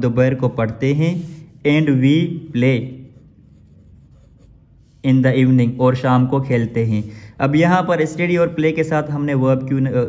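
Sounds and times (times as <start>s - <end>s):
pencil scratching on paper: 0.3s - 5.2s.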